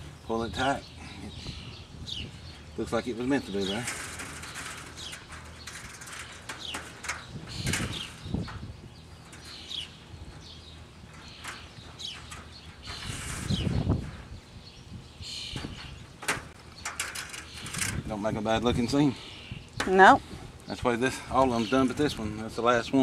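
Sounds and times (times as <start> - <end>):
wire mesh rustle: 2.4 - 19.0
wire clicking and scratching: 3.3 - 14.3, 15.6 - 18.1.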